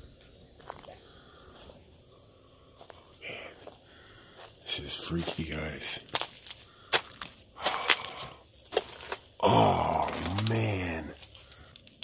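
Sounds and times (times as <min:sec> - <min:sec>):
footsteps crunching over debris: 0:00.6 - 0:01.8, 0:02.8 - 0:12.0.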